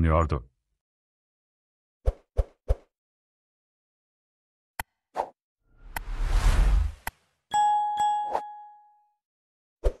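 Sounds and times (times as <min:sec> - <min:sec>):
notification bell ding: 0:07.5 - 0:09.2.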